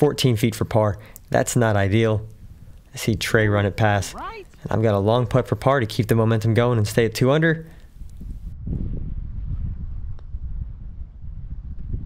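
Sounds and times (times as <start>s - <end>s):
wind buffeting microphone: 1.6s - 6.7s, 7.8s - 12.0s.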